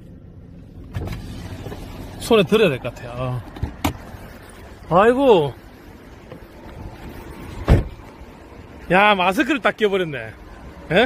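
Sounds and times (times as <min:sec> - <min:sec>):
low car rumble: 0:00.0 - 0:11.0.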